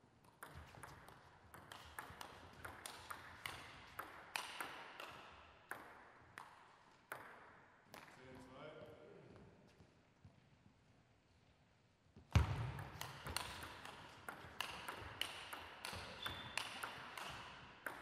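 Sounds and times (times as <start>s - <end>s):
table tennis ball clicking: 0.2s - 7.4s, 12.8s - 18.0s.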